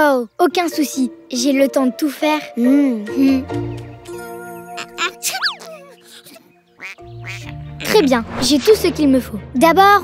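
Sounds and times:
light background music: 0.0 - 10.0
cartoon duck quacking: 6.8 - 8.2.

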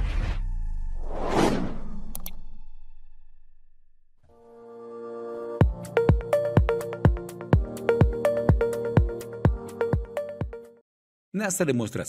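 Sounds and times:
whoosh: 0.0 - 3.4.

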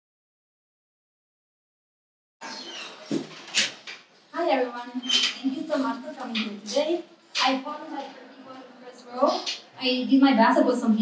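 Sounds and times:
room noise: 2.4 - 11.0.

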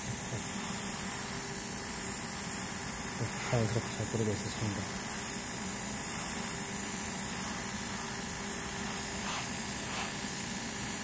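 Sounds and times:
airbrush spraying hiss: 0.0 - 11.0.

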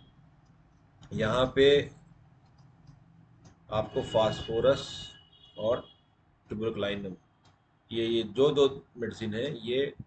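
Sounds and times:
man talking: 1.1 - 1.9, 3.7 - 5.8, 6.5 - 7.2, 7.9 - 10.0.

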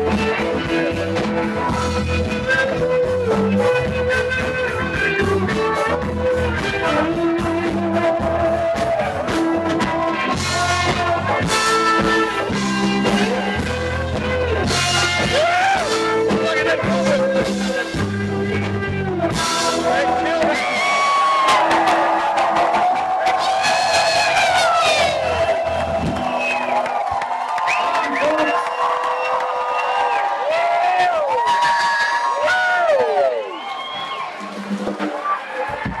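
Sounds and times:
pulsing bass line: 0.0 - 26.9
crowd singing and whooping: 0.0 - 36.0
live dance music over pa: 0.0 - 36.0.

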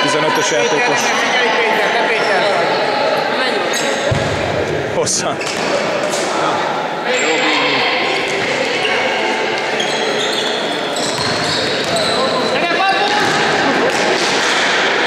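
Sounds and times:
voices in sports hall: 0.0 - 15.0
shoes squeaking on court: 9.6 - 13.0.

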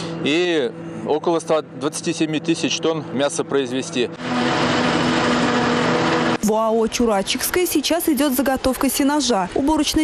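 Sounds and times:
forage harvester running: 0.0 - 10.0
steady machine hum: 0.0 - 10.0.

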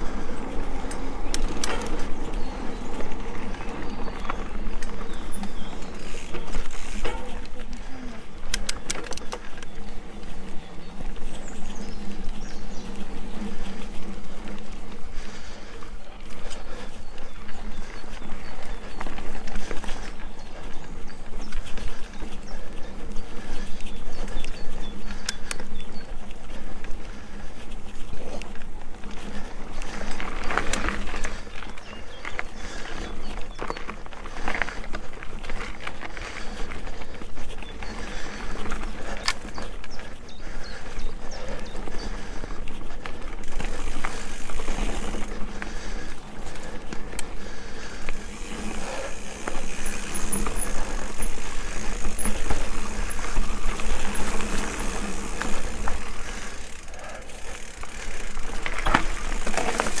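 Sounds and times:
bike clicking and rattling: 0.0 - 60.0
bike tyres on dirt trail: 0.0 - 60.0.

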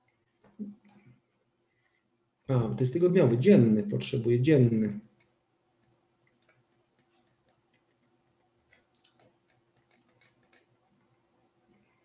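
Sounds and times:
computer mouse clicks: 4.9 - 8.0, 8.7 - 10.8.

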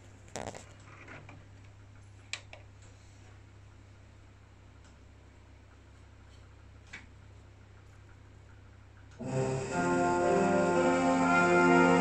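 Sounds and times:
low steady hum: 0.0 - 12.0
cd changer mechanism ticking: 1.6 - 11.6.

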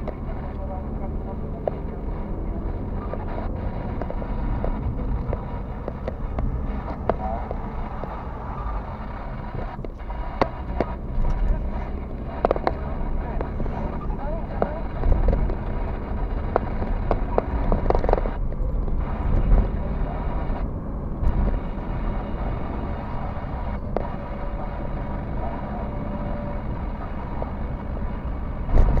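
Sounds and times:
car interior road rumble: 0.0 - 29.0
sharp clicks and knocks: 3.0 - 8.7, 9.5 - 19.8.

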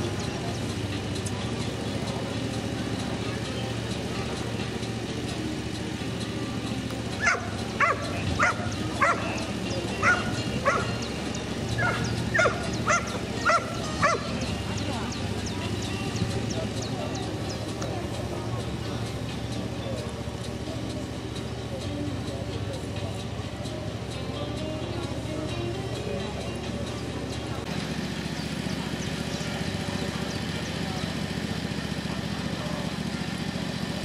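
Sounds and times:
murmur of voices: 0.0 - 34.0.

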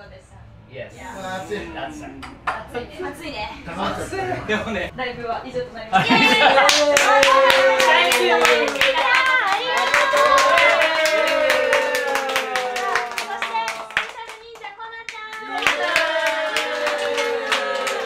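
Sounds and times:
rhythmic hand clapping: 6.6 - 18.0.

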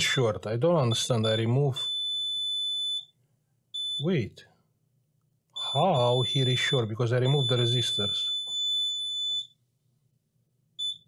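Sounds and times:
multimeter continuity beep: 0.9 - 3.1, 3.8 - 4.2, 5.6 - 9.6, 10.8 - 11.0.

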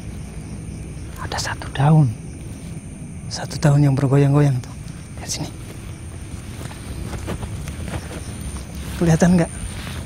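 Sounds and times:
footsteps in undergrowth: 5.0 - 10.0.

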